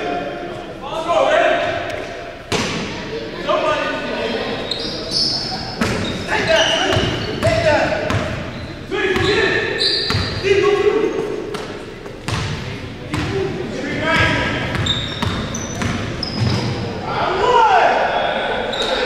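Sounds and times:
players calling out: 0.0s - 19.0s
sneakers squeaking: 4.4s - 17.1s, 18.0s - 19.0s.

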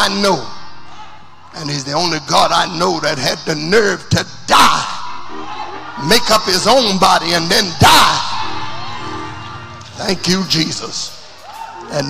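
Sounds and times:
preacher shouting through speakers: 0.0s - 12.0s.

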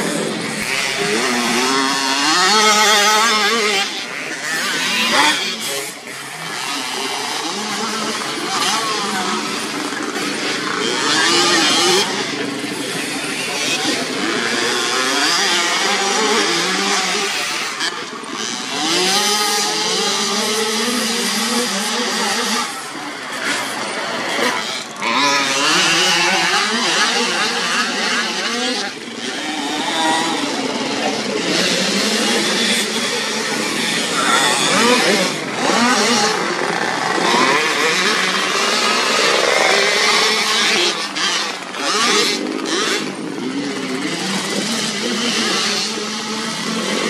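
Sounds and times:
motocross bikes revving: 0.0s - 47.0s.

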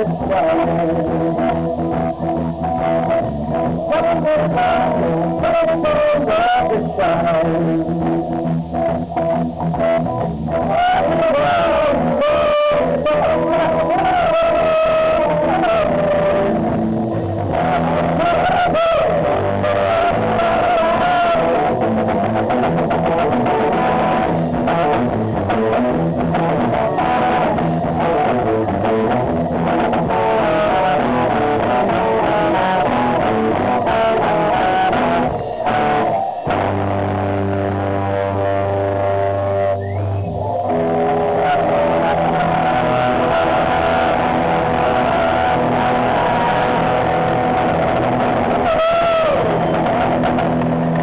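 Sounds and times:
bass and drums: 0.0s - 51.0s
sustained electric guitar lead note: 0.0s - 51.0s.

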